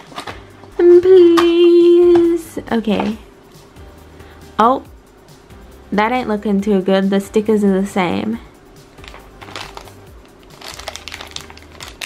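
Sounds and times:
quiet background music: 0:00.0 - 0:12.0
plastic wrapper crinkling: 0:09.0 - 0:12.0.

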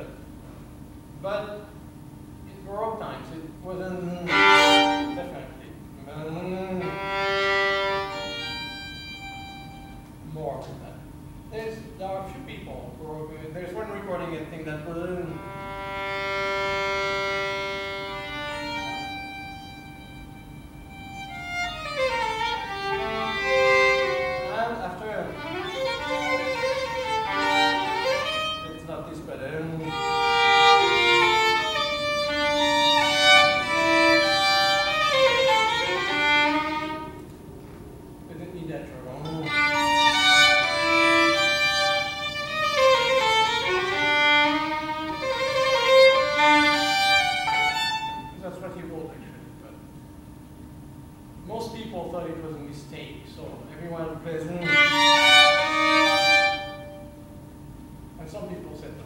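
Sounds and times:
solo violin melody: 0:04.2 - 0:05.4, 0:06.7 - 0:10.1, 0:15.3 - 0:28.9, 0:29.8 - 0:37.3, 0:39.3 - 0:48.4, 0:54.6 - 0:57.2.

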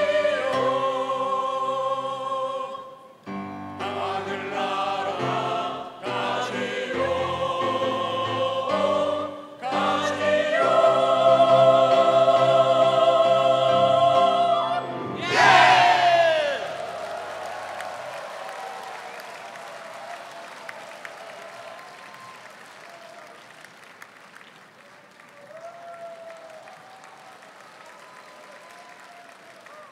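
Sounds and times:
choir singing final chord: 0:00.0 - 0:17.0
whooping shouts: 0:15.2 - 0:23.4, 0:25.4 - 0:29.9
audience applauding: 0:15.3 - 0:29.9.

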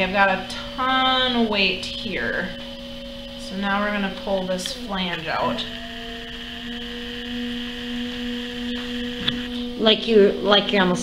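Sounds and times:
potter's wheel motor humming: 0:00.0 - 0:11.0.

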